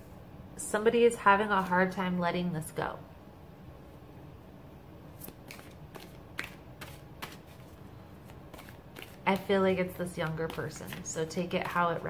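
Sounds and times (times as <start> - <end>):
cards being shuffled: 5.2 - 11.8.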